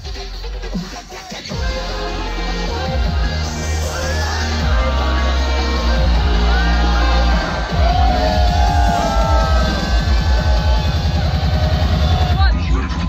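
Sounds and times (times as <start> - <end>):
loud electronic dance music: 0.0 - 13.0
crowd cheering: 2.2 - 13.0.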